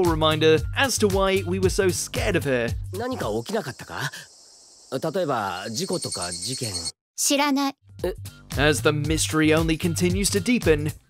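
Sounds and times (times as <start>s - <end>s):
person speaking: 2.9s - 4.3s
insects chirping: 2.9s - 7.0s.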